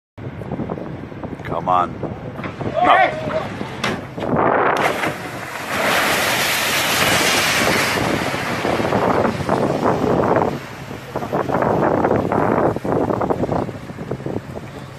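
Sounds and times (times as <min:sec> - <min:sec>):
wind buffeting microphone: 0:00.2 - 0:14.9
sea water rushing and churning: 0:02.4 - 0:14.9.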